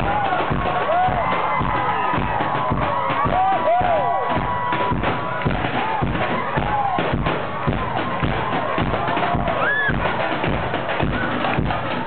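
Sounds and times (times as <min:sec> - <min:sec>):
kick drum beat: 0:00.0 - 0:12.0.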